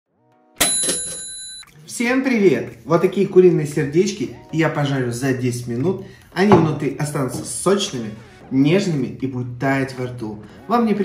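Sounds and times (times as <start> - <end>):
bright bell-like ding: 0.6 - 1.7.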